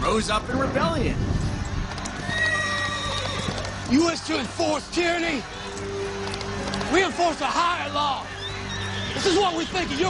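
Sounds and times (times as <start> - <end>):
background music: 0.0 - 10.0
horse whinnying: 2.2 - 3.8.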